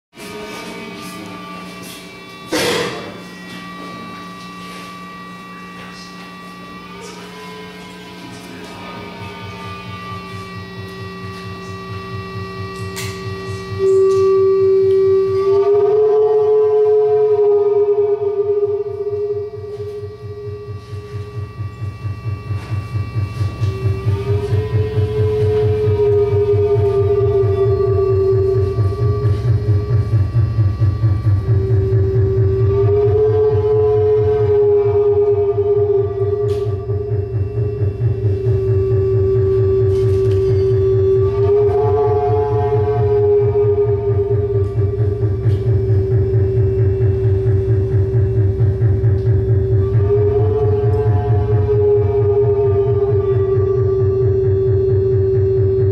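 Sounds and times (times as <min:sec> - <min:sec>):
low pulsing synth drone: 0:00.1 - 0:55.9
siren-like synthesizer tone: 0:00.2 - 0:55.9.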